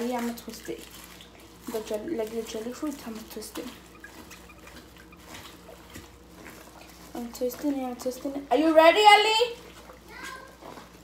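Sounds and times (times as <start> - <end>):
water dripping: 0.0 - 7.0
plastic bag twisting: 0.0 - 8.0
water trickling: 0.0 - 11.0.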